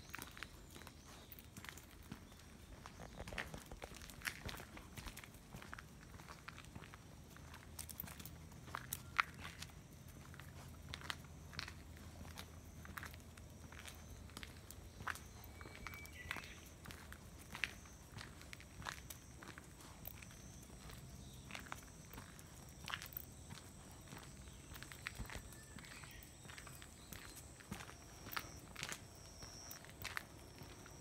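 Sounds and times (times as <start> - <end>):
footsteps on paved path: 0.0 - 31.0.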